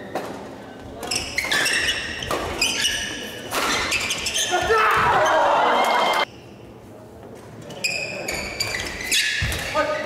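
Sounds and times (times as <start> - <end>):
shoes squeaking on wooden floor: 1.0 - 4.8.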